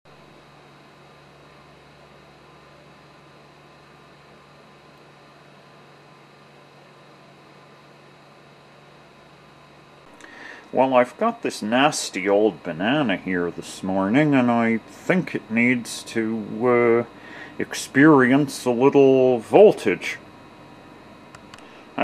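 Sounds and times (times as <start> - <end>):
steady low hum: 0.1 - 22.0.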